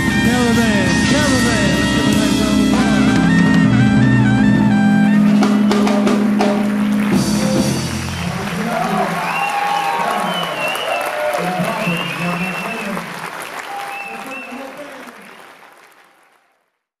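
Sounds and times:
audience applauding: 5.4 - 16.9.

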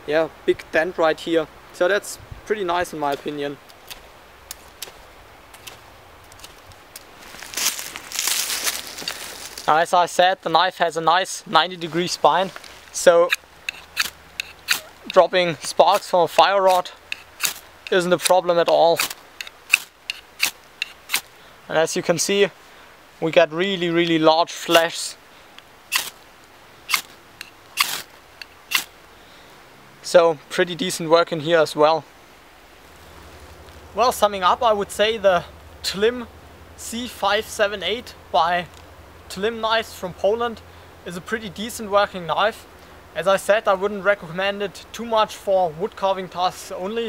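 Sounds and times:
knife scraping ferrocerium rod: 13.0 - 21.3, 25.9 - 26.2, 26.9 - 28.9.

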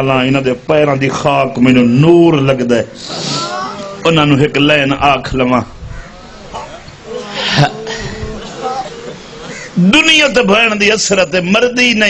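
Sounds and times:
soft human voices: 3.0 - 4.2, 6.0 - 9.8
loud voiced cry: 3.1 - 4.1, 6.0 - 9.8.

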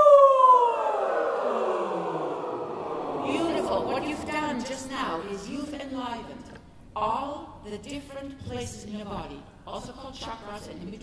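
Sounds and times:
group of voices singing downward slide: 0.0 - 5.6.

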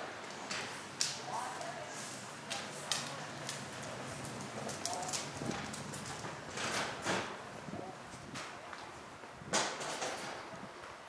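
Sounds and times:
market background noise: 0.0 - 11.0.

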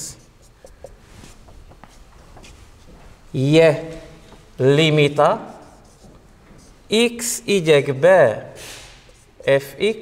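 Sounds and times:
marker pen squeaking on whiteboard: 0.0 - 2.9, 5.4 - 7.4, 8.9 - 9.7.

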